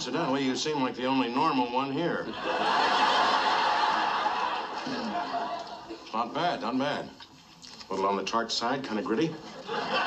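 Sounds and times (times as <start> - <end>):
audience laughing: 2.3 - 6.1, 9.4 - 10.0.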